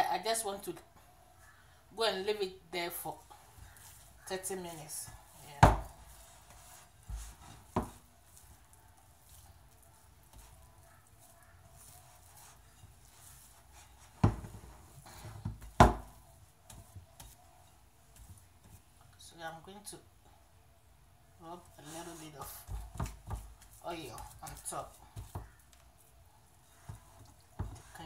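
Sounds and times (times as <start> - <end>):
dough rubbing and pressing: 3.0 - 19.2, 21.5 - 28.0.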